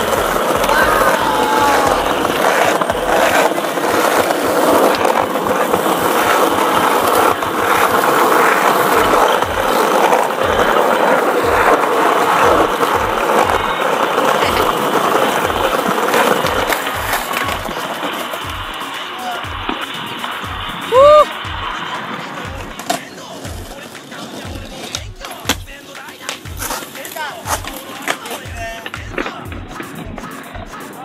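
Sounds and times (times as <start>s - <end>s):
skateboard wheels rolling on paving: 0.0s - 31.0s.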